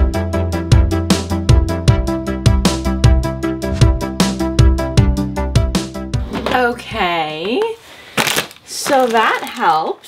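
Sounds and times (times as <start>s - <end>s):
plastic bag crinkling: 7.9s - 10.0s.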